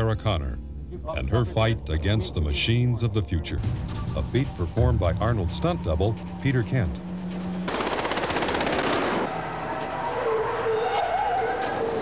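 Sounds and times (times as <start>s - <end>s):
steady drone: 0.0s - 11.2s
rapid automatic gunfire: 7.7s - 9.3s.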